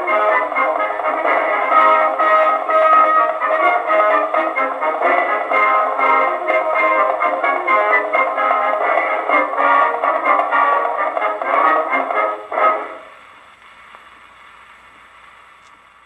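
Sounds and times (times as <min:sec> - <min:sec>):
old gramophone military band march: 0:00.0 - 0:13.2
record surface hiss: 0:00.0 - 0:16.0.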